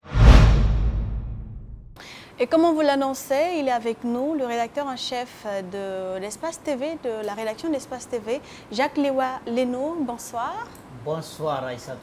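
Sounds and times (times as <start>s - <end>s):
whoosh with deep boom: 0.0s - 2.0s.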